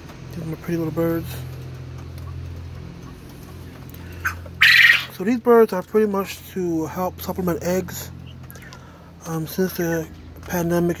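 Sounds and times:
low steady hum: 0:00.0 - 0:11.0
quail call: 0:04.0 - 0:05.2.

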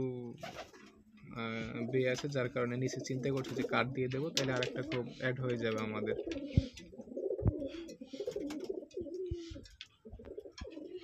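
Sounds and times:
pigeons cooing: 0:00.4 - 0:11.0.

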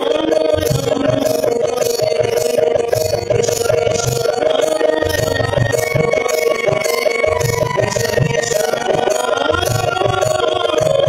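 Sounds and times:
drum beating: 0:00.0 - 0:11.0
harmonium: 0:00.0 - 0:11.0.

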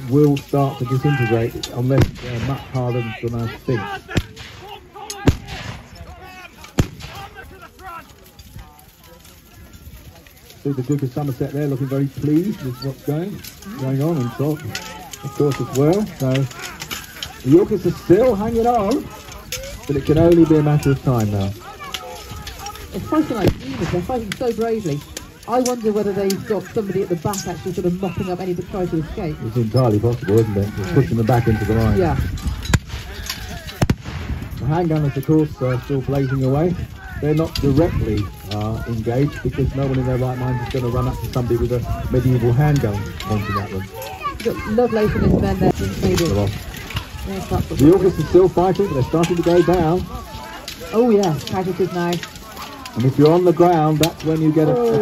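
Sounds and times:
murmur of distant voices: 0:00.0 - 0:55.0
black-powder guns firing: 0:01.9 - 0:02.8, 0:04.1 - 0:07.5, 0:23.1 - 0:24.4, 0:33.8 - 0:34.6
handgun sharp reports: 0:03.8 - 0:07.6.

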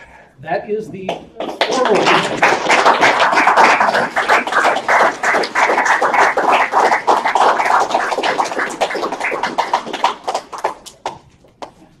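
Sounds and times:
audience applauding: 0:01.1 - 0:11.2.

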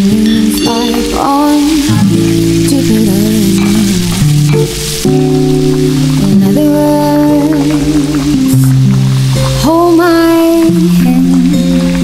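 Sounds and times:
vegetables sizzling in a pan: 0:00.0 - 0:12.0.

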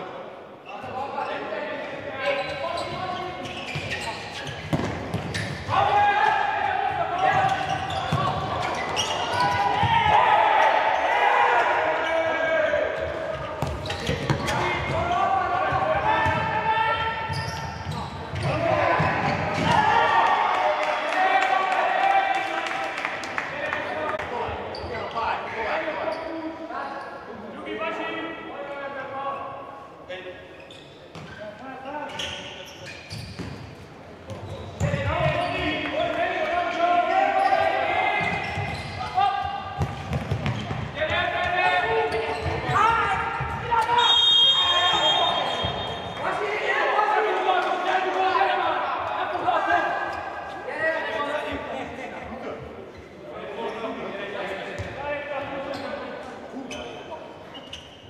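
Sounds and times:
ball kicked and bouncing: 0:04.7 - 0:05.3
players shouting: 0:05.4 - 0:24.2, 0:34.9 - 0:50.3
referee's whistle: 0:43.8 - 0:46.2.

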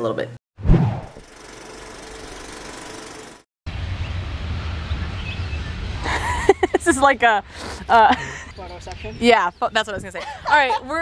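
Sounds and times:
wind buffeting microphone: 0:07.0 - 0:11.0.

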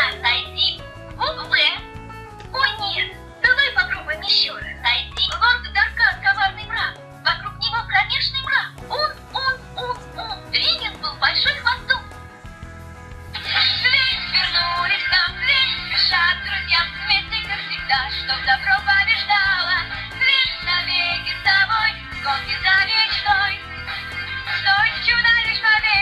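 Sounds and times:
sung melody: 0:00.0 - 0:07.6
recorded voice from small speaker: 0:00.0 - 0:12.1, 0:13.3 - 0:26.0
synthesized backing tune: 0:00.0 - 0:26.0.

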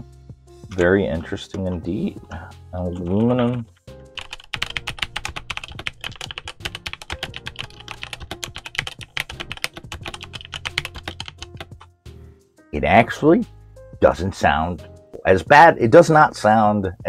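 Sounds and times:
mechanical keyboard typing: 0:02.9 - 0:11.9.

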